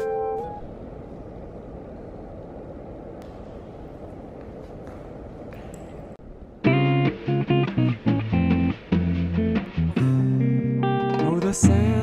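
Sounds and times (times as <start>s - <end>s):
low rumbling room tone: 0.0s - 12.0s.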